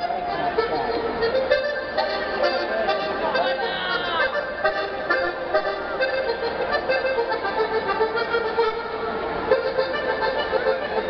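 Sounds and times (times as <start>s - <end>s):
accordion folk tune: 0.0s - 11.0s
outdoor crowd noise: 0.0s - 11.0s.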